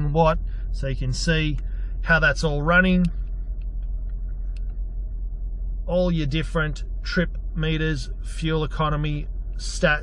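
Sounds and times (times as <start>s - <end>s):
car cabin low rumble: 0.0s - 10.0s
faint clicks: 3.0s - 5.1s.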